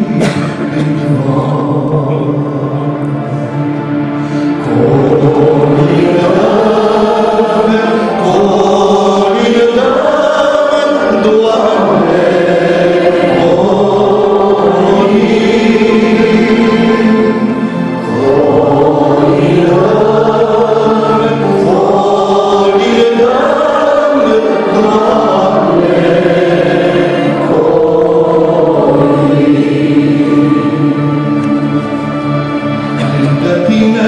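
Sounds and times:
men singing a carol: 0.0 - 3.6, 4.6 - 34.0.

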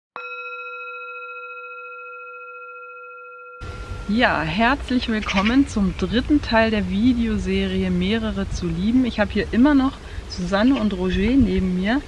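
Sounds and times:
singing bowl ringing: 0.2 - 6.0
background noise: 3.6 - 12.0.

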